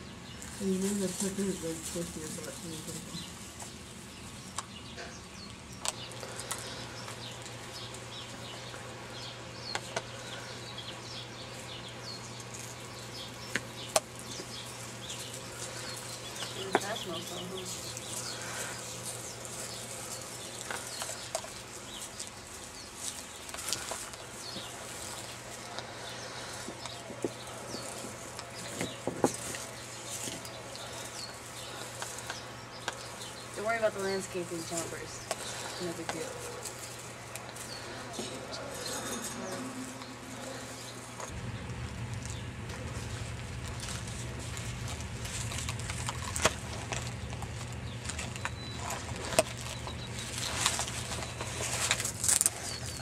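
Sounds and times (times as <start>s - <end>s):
small birds chirping: 0.0s - 53.0s
steady low hum: 0.0s - 53.0s.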